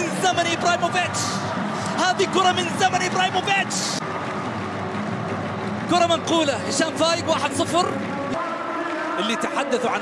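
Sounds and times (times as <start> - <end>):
empty stadium background noise: 0.0 - 10.0.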